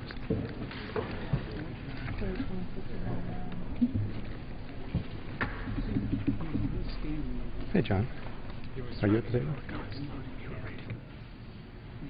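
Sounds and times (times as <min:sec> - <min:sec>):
low voices murmuring: 0:00.0 - 0:12.0.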